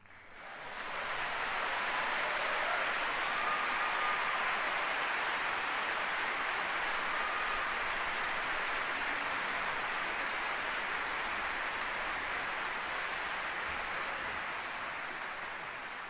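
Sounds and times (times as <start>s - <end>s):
large audience applauding: 0.0s - 16.0s.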